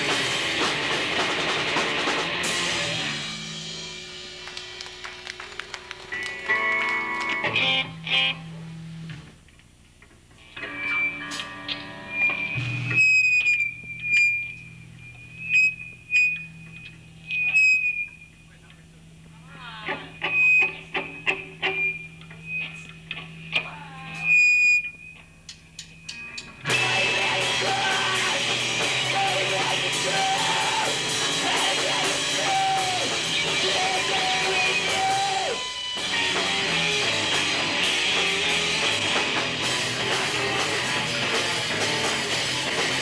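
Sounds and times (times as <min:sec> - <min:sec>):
guitar feedback whine: 0:00.0 - 0:05.4, 0:06.1 - 0:09.4, 0:10.4 - 0:43.0
rock band playing: 0:00.0 - 0:09.2, 0:10.6 - 0:15.4, 0:26.0 - 0:43.0
electric guitar notes and chords: 0:00.0 - 0:09.4, 0:10.4 - 0:18.1, 0:25.2 - 0:43.0
amplifier hum: 0:06.4 - 0:43.0.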